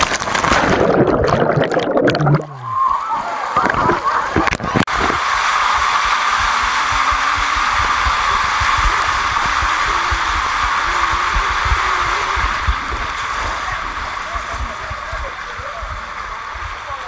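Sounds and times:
water rushing through slide tube: 0:00.0 - 0:17.0.

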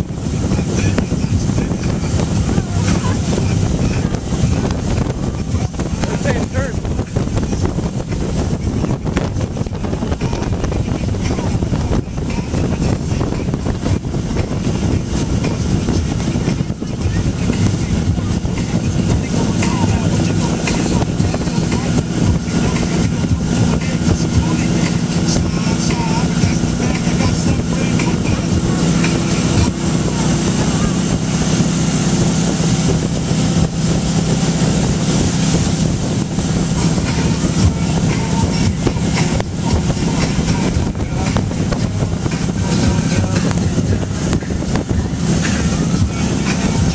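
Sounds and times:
boat engine running: 0:00.0 - 0:46.9
rushing boat wake: 0:00.0 - 0:46.9
wind buffeting microphone: 0:00.0 - 0:46.9.

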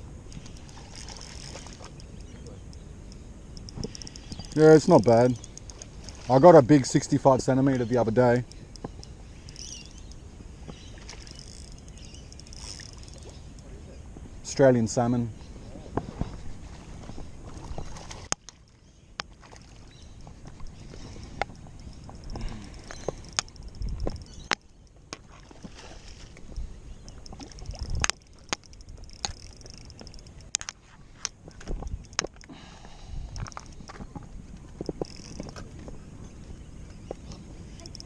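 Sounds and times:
fishing reel clicks and knocks: 0:00.4 - 0:04.6, 0:05.2 - 0:06.2, 0:11.3 - 0:13.7, 0:21.4 - 0:25.0, 0:27.1 - 0:30.8, 0:31.9 - 0:32.5, 0:34.8 - 0:35.6, 0:37.8 - 0:38.0
light water splashes: 0:03.6 - 0:13.9, 0:15.6 - 0:32.5.

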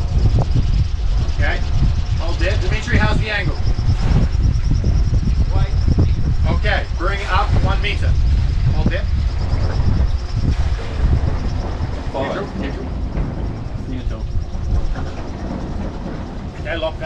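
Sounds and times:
diesel engine low rumble: 0:00.0 - 0:17.0
voices: 0:01.3 - 0:04.3, 0:05.1 - 0:17.0.

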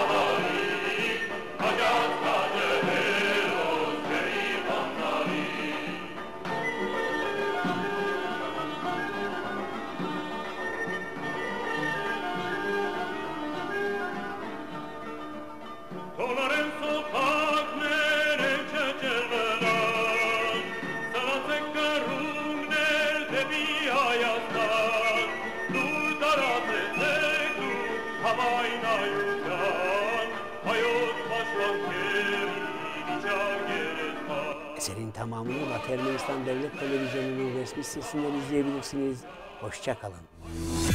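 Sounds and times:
man singing with vibrato: 0:00.0 - 0:06.2, 0:16.2 - 0:40.9
folk instrumental ensemble: 0:00.0 - 0:40.9.

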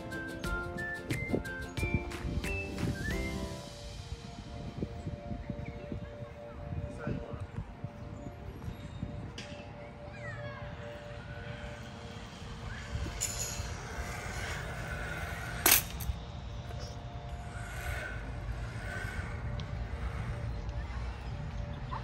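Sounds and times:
trolley whirring along cable: 0:00.0 - 0:22.0
wind rumble on microphone: 0:00.8 - 0:10.0, 0:10.7 - 0:22.0.

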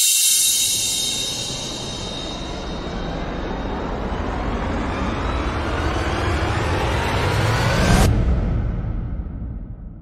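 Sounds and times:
rising whoosh sweep: 0:00.0 - 0:06.0
low rumble: 0:00.3 - 0:10.0.

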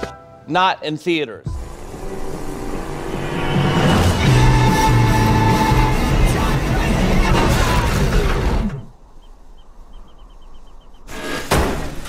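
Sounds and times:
car engine winding down: 0:01.6 - 0:09.3.

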